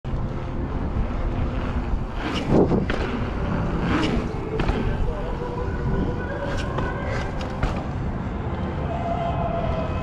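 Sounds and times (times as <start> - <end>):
wind rumbling on microphone: 0.1 - 10.0
bike rolling over stone paving: 1.3 - 8.0.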